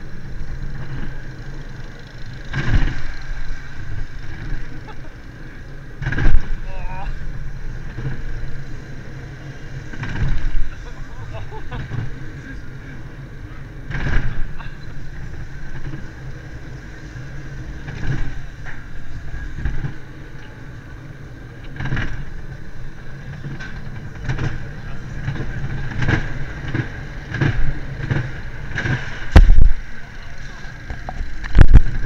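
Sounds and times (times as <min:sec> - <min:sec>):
coaster car rumbling on track: 0:00.0 - 0:32.0
high whine from wheels: 0:00.0 - 0:32.0
heavy thump: 0:13.9 - 0:14.6, 0:25.3 - 0:29.8.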